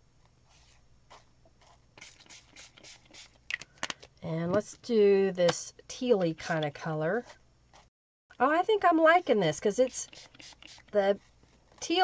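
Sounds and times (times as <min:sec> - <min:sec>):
spray bottle hisses: 0:02.0 - 0:03.4, 0:10.1 - 0:10.9.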